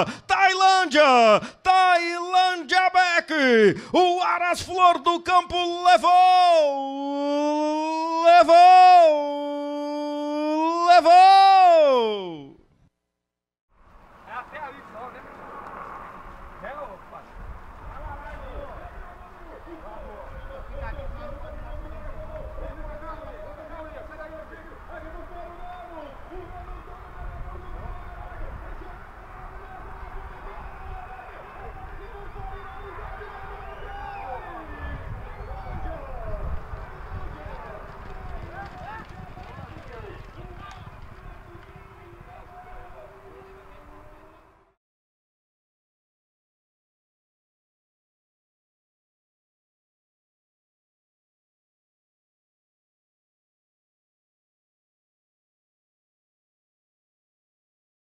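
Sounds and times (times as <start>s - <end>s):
wind rumble on microphone: 16.1s - 23.9s, 26.3s - 44.2s.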